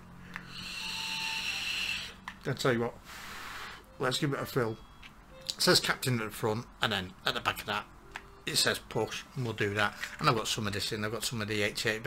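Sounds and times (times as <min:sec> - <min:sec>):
vape draw airy hiss: 0:00.4 - 0:02.2, 0:03.0 - 0:03.9.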